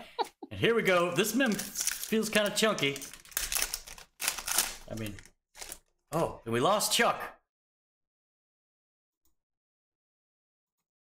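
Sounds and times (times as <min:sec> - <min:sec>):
foil wrapper crinkling and tearing: 0:00.9 - 0:06.0.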